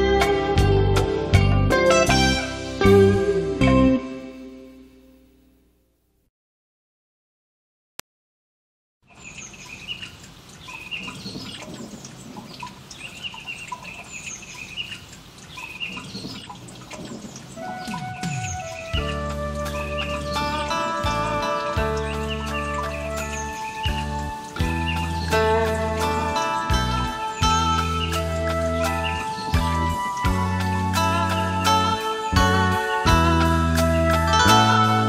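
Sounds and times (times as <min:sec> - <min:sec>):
full band with bass: 0:00.0 - 0:04.2, 0:19.0 - 0:35.0
sustained instrumental notes: 0:00.0 - 0:05.0, 0:17.6 - 0:35.0
birds chirping: 0:09.0 - 0:35.0.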